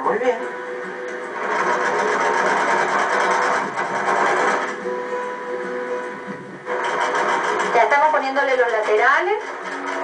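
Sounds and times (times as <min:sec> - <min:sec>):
electric sewing machine running: 0:00.8 - 0:10.0.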